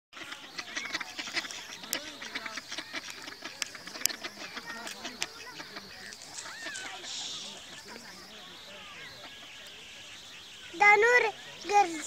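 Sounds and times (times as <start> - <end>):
ducks quacking: 0.1 - 12.0.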